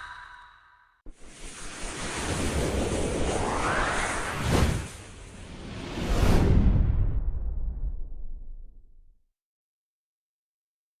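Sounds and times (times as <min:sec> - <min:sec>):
rising sweep: 0:01.3 - 0:06.6.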